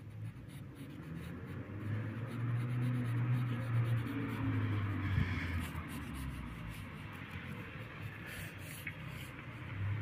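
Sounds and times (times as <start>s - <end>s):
charcoal scratching on paper: 0.0s - 10.0s.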